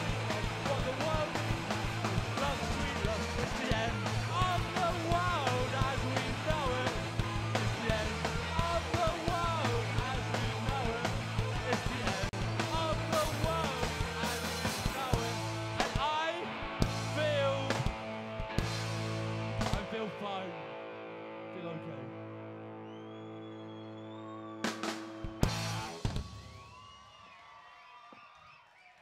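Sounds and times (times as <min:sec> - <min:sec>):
drum and cymbal hits: 0:00.0 - 0:16.1
rock band playing live: 0:00.0 - 0:26.7
audience cheering and whistling: 0:22.6 - 0:29.0.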